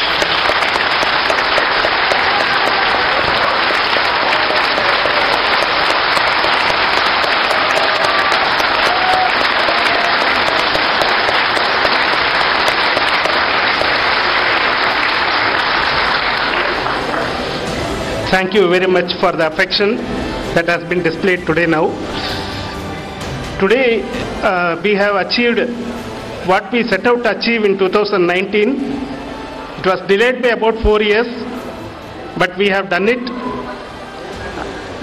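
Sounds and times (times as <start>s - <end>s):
large audience applauding: 0.0s - 18.0s.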